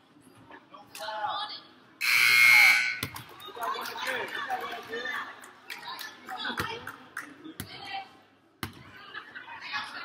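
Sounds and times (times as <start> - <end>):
scoreboard buzzer: 2.0 - 3.0.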